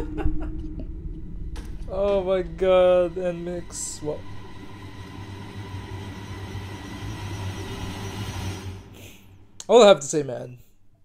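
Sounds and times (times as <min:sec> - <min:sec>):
low rumbling drone: 0:00.0 - 0:09.7.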